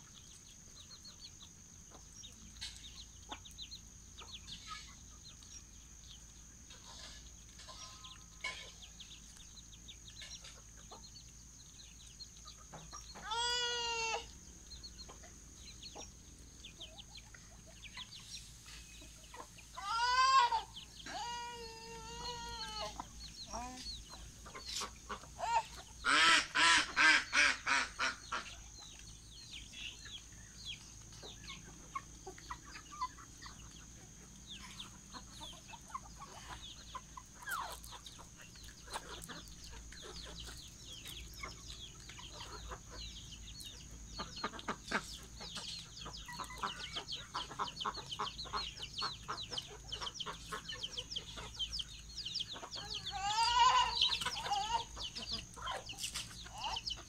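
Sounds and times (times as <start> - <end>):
chickens clucking: 0.0 - 57.0
chicks peeping: 0.0 - 57.0
loud chicken calls: 12.5 - 15.4, 19.1 - 29.2, 31.2 - 57.0.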